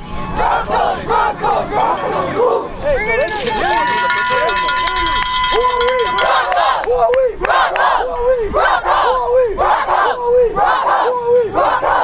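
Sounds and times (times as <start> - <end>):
players shouting together: 0.4 - 12.0.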